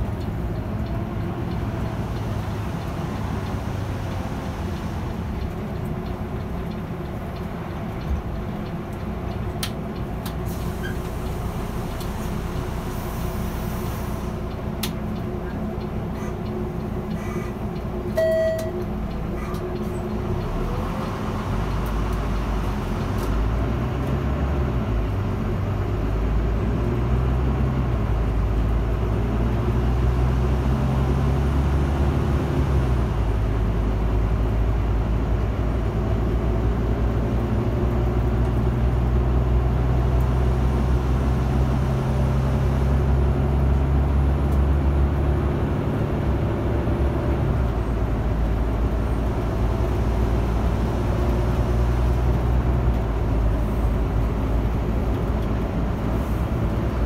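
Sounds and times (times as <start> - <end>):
bus engine running: 0.0 - 57.0
road noise: 0.0 - 57.0.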